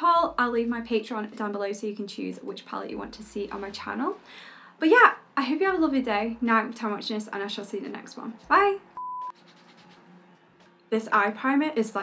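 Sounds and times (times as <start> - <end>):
short electronic beep: 9.0 - 9.4.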